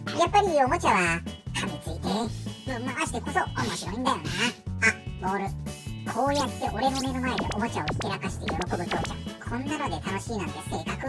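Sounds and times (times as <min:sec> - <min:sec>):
voice-over narration: 0:06.1 - 0:10.6
background music with bass line: 0:06.3 - 0:09.6.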